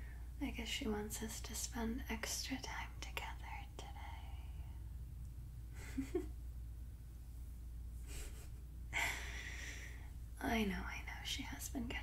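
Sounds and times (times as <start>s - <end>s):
woman whispering: 0.4s - 4.8s, 10.4s - 12.0s.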